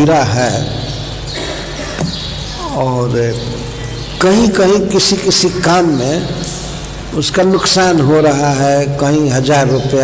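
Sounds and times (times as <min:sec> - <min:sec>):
low hum and hiss: 0:00.0 - 0:10.0
man speaking: 0:02.6 - 0:06.5, 0:07.1 - 0:10.0.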